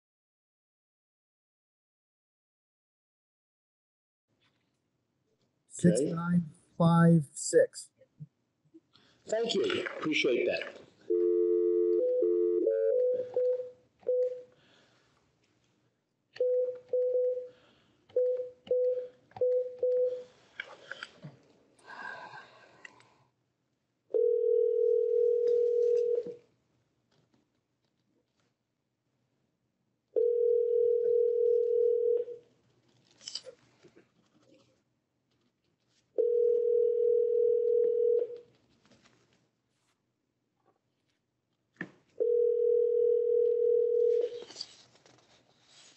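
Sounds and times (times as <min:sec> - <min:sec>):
telephone dial tone: 0:11.1 - 0:14.4, 0:24.1 - 0:26.4, 0:30.2 - 0:32.3, 0:36.2 - 0:38.4, 0:42.2 - 0:44.4.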